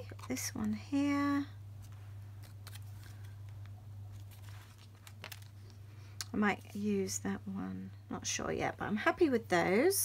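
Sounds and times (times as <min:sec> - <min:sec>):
low hum: 0:00.0 - 0:08.4
paper rustling: 0:01.8 - 0:05.8.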